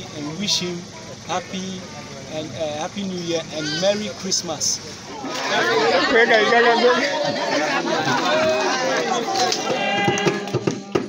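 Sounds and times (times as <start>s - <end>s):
children's excited babble: 3.5s - 4.1s, 5.1s - 10.4s.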